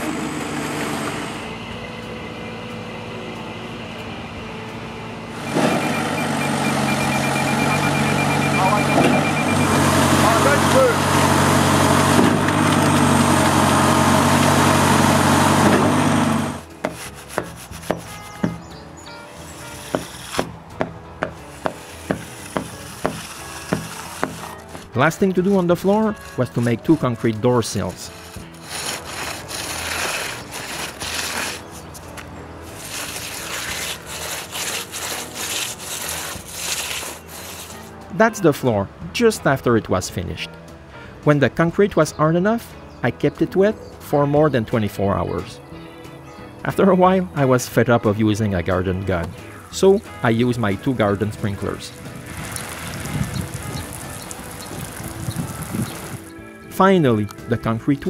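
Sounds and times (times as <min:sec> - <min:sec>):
background music: 0:01.4 - 0:58.0
trowel scraping wet concrete: 0:10.2 - 0:18.6, 0:19.3 - 0:38.0, 0:48.6 - 0:58.0
sprinklers spraying water: 0:52.1 - 0:56.3.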